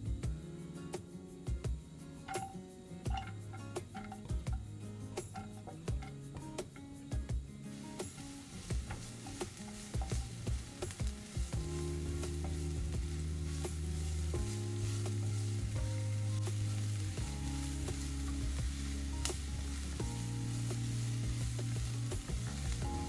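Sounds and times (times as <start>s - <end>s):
soft background music chords: 0.0s - 23.0s
onion sizzling in oil: 2.3s - 23.0s
wooden spatula scraping pan: 7.7s - 22.6s.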